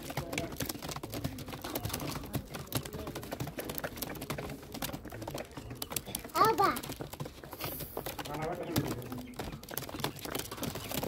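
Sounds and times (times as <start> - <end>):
pigeons pecking grain on bricks: 0.0 - 11.0.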